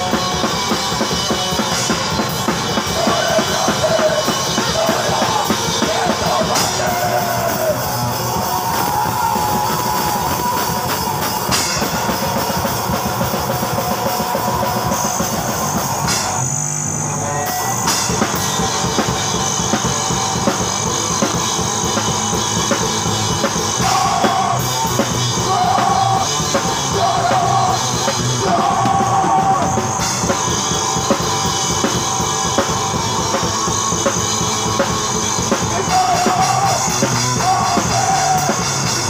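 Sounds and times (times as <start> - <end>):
drum kit rapid hits: 0.0 - 16.6, 17.5 - 39.0
electric guitar: 0.0 - 39.0.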